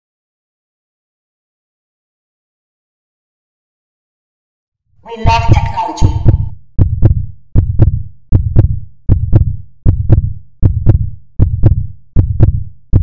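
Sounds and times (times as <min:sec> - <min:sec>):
paired deep thumps: 0:05.2 - 0:13.0.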